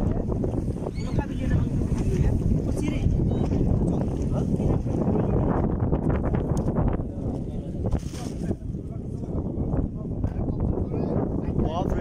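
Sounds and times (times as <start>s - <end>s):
voices: 0.0s - 5.7s
wind buffeting microphone: 0.0s - 12.0s.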